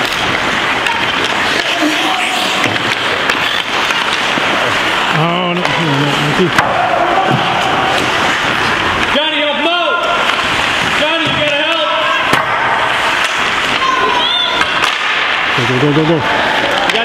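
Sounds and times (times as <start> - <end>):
hockey sticks and puck knocking: 0.0 - 5.0, 6.5 - 9.3, 10.0 - 15.6, 16.5 - 17.0
steady rink din: 0.0 - 17.0
spectators shouting: 5.0 - 17.0.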